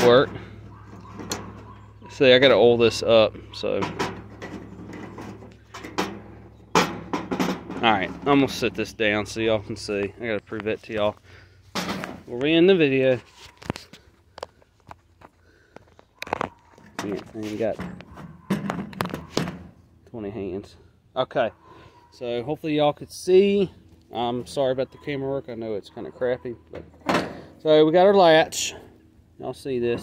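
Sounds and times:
metal latch clicking and scraping: 0.0s - 9.5s, 16.2s - 19.8s, 26.0s - 27.6s.

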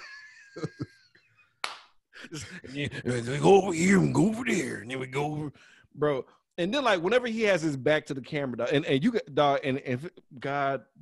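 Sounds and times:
men laughing quietly: 0.0s - 1.5s.

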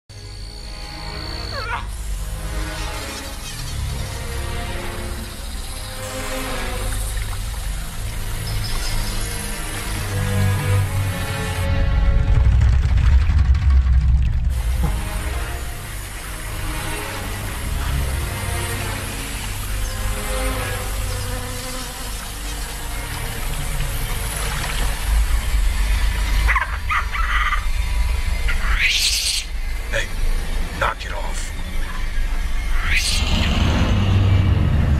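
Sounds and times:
insects buzzing: 0.1s - 12.2s, 14.5s - 34.9s
low rumbling film score drone: 0.1s - 34.9s
animal cry sweeping in pitch: 1.4s - 2.0s, 28.4s - 29.6s, 32.6s - 34.4s
sharp animal calls: 26.4s - 27.7s, 28.4s - 30.1s, 32.6s - 33.6s.

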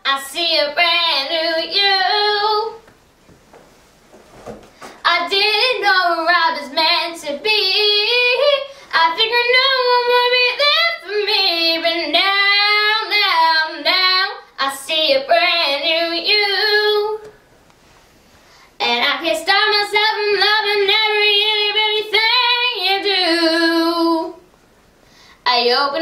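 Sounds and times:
girl singing: 0.0s - 2.9s, 4.9s - 17.3s, 18.8s - 24.4s, 25.4s - 26.0s.

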